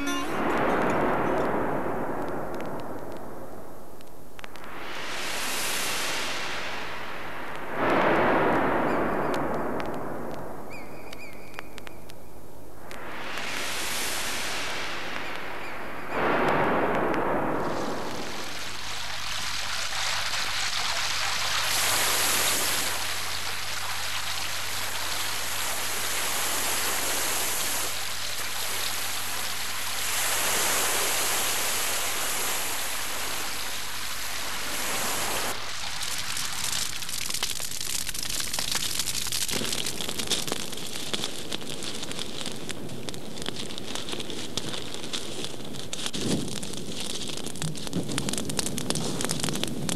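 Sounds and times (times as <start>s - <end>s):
rush of foaming water: 0.0s - 3.7s, 4.5s - 10.7s, 12.8s - 49.9s
dense crackling rustle: 0.0s - 49.9s
waves breaking on sand: 4.5s - 10.7s, 12.9s - 49.9s.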